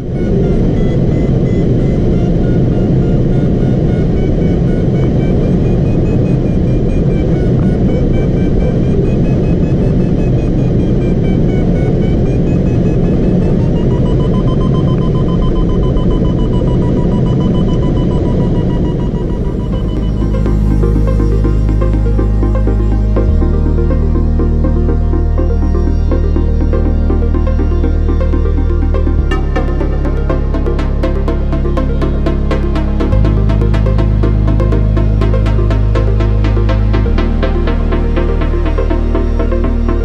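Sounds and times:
steady airflow noise: 0:00.0 - 0:40.0
wavering electronic tone: 0:00.0 - 0:40.0.

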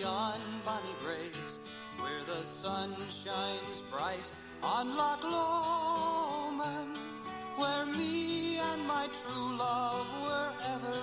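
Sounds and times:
country instrumental music: 0:00.0 - 0:11.0
plucked acoustic guitar: 0:00.0 - 0:11.0.

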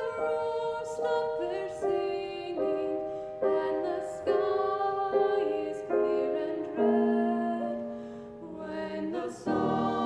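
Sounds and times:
choir singing slow song: 0:00.0 - 0:10.0.

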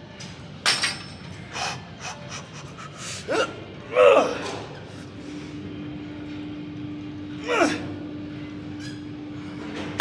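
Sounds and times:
person grunting: 0:03.3 - 0:04.6, 0:07.4 - 0:07.9.

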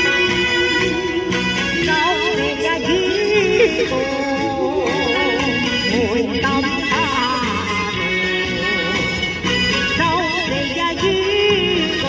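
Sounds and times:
backing track: 0:00.0 - 0:12.0
woman singing with vibrato: 0:00.0 - 0:12.0.

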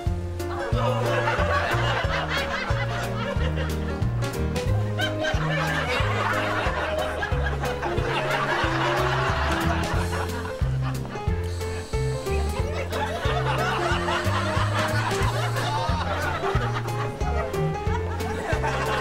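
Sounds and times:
light comedic music: 0:00.0 - 0:19.0
laugh track: 0:00.3 - 0:19.0.

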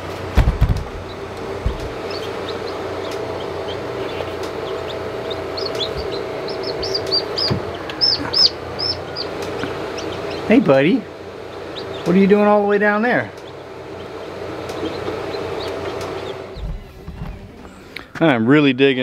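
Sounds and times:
incubator fan hum: 0:00.0 - 0:19.0
low thumps: 0:00.3 - 0:02.4, 0:14.7 - 0:17.9
chicks peeping: 0:00.4 - 0:18.2.

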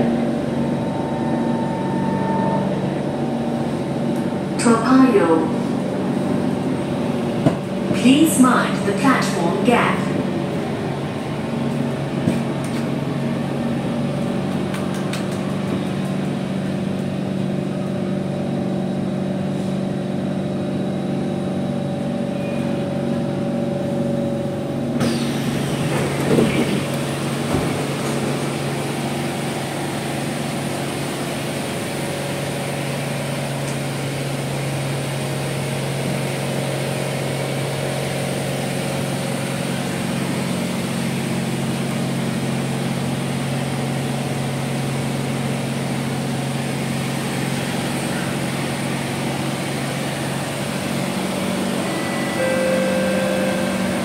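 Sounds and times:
train air-conditioning hum: 0:00.0 - 0:35.2, 0:46.6 - 0:54.0.

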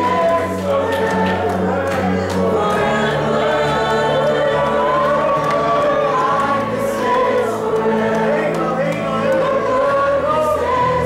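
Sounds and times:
choir singing a worship song: 0:00.0 - 0:11.0.

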